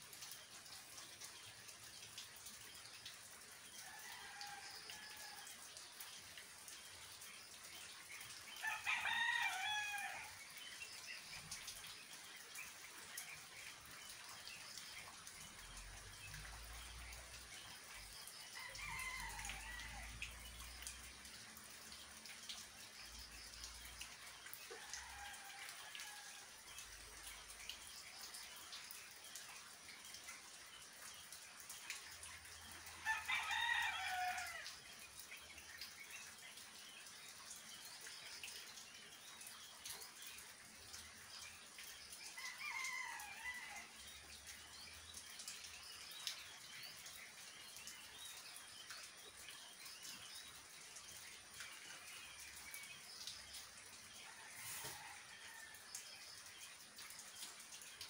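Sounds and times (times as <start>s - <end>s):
steady rain: 0.0s - 58.0s.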